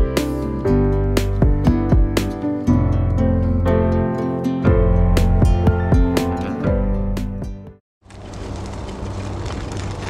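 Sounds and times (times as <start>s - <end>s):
tyres rolling on grit: 8.1s - 10.0s.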